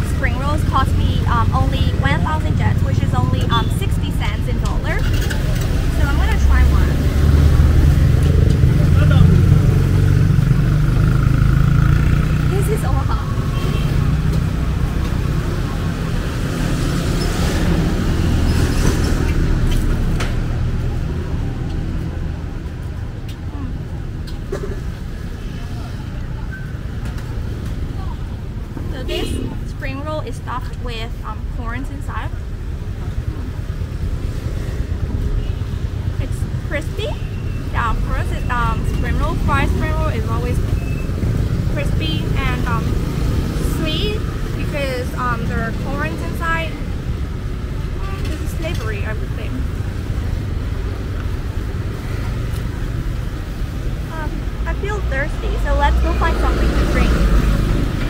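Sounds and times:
vehicle engine rumbling: 0.0 - 58.0.

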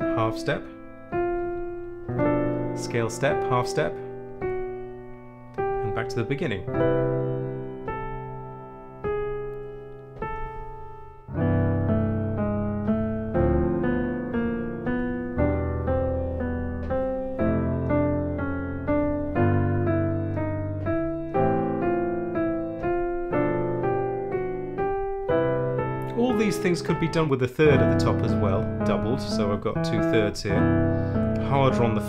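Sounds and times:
piano chords: 0.0 - 32.0.

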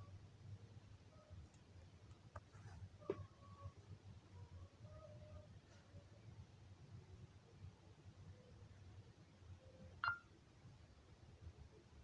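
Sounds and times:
smartphone touch beep: 10.0 - 10.2.

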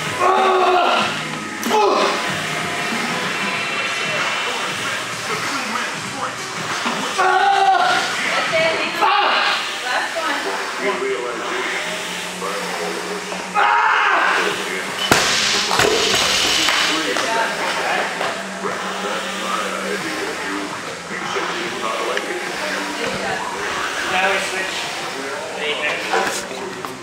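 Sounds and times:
music: 0.0 - 27.0
voices: 0.0 - 27.0.

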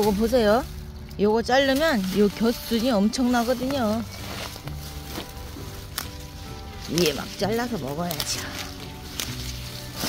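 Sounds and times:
soft sustained background music: 0.0 - 10.0.

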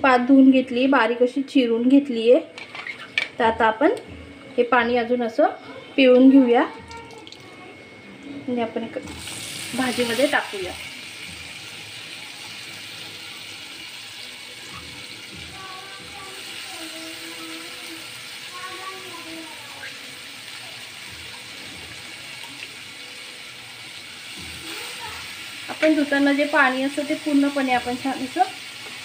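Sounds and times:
onions sizzling in hot oil: 9.0 - 29.0.

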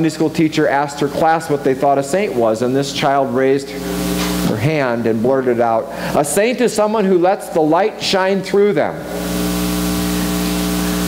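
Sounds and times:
speech: 0.0 - 3.8, 4.5 - 9.0
electrical buzz with hiss: 0.8 - 6.5, 8.9 - 11.0.

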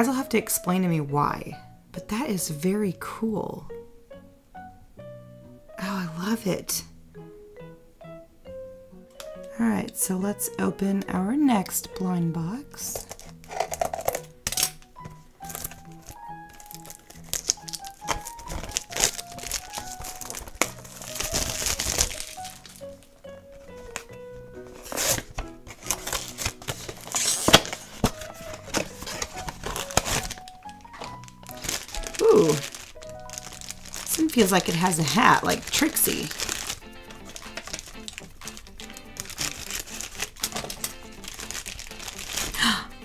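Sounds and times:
simple background melody: 0.0 - 43.0
plastic bag crinkling: 12.9 - 42.8
cardboard box being opened: 13.0 - 14.2, 15.4 - 23.0, 23.6 - 42.6.

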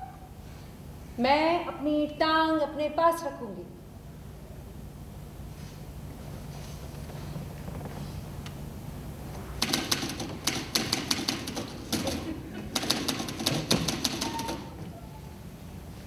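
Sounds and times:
typewriter keys clattering: 9.6 - 14.8.

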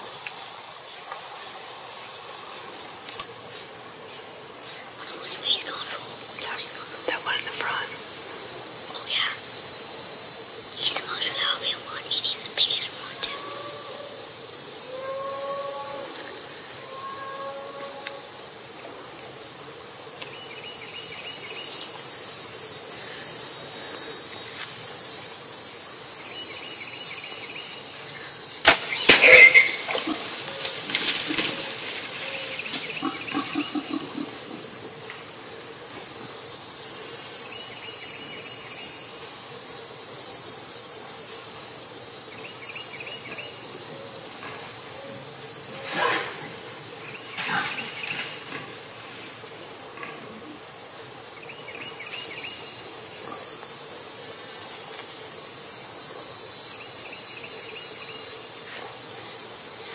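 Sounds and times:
insect buzzing with pulsed trill: 0.0 - 50.1
bow shot cracks and thumps: 28.6 - 30.0.

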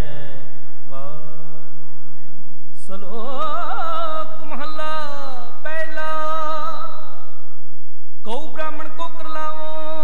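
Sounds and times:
man singing: 0.0 - 1.8, 2.7 - 7.4, 8.2 - 10.0.

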